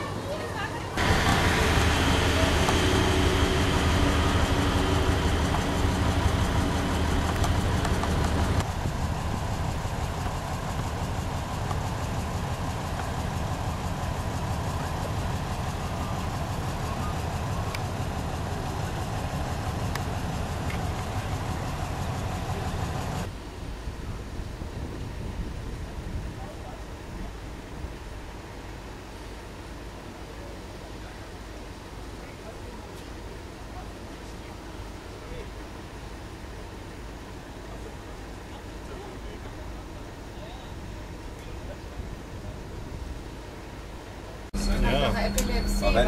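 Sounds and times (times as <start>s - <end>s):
railbus diesel engine drone: 0.0s - 46.0s.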